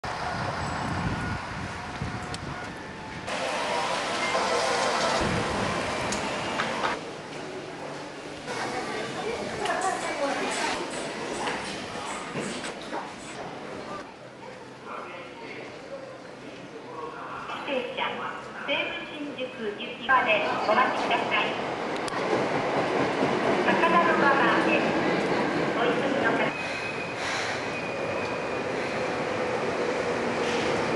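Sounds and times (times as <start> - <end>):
electric train rail noise: 0.0 - 13.3, 20.8 - 30.9.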